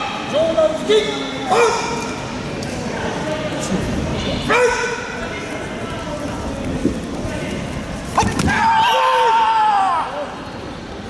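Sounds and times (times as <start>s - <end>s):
crowd chatter in sports hall: 0.0s - 11.0s
loud shout: 8.2s - 10.4s.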